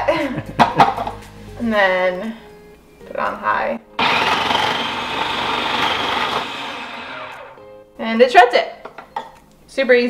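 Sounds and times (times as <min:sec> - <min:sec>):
food processor shredding beets: 0:04.0 - 0:07.6.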